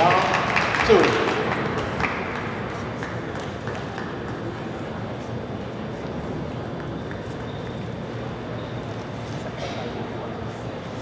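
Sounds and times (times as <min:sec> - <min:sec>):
murmur of large hall: 0:00.0 - 0:11.0.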